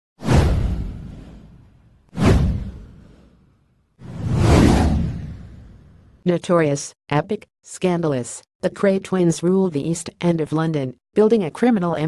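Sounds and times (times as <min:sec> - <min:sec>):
whoosh with deep rumble: 0:00.2 - 0:06.2.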